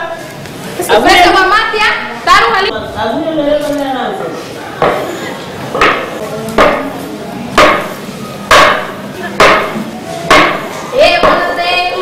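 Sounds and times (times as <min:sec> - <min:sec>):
hard percussive knocks: 0:05.8 - 0:06.9, 0:07.6 - 0:11.6.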